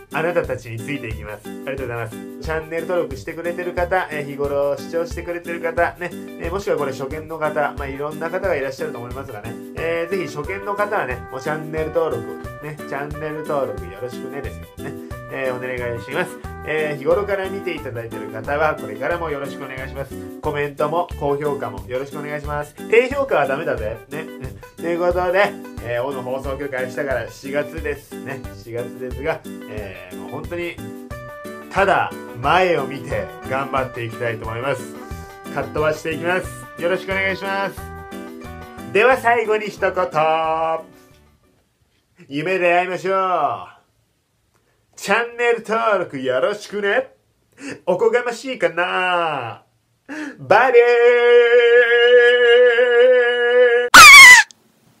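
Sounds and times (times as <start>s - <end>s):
man's voice: 0.0s - 30.8s, 31.7s - 37.9s, 38.9s - 40.9s
background music: 0.0s - 41.5s
piercing shriek: 53.9s - 54.5s.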